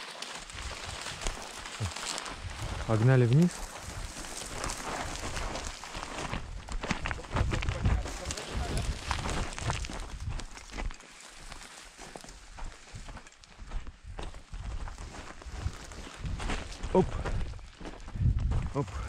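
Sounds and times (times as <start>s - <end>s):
footsteps on loose gravel: 0.0s - 19.0s.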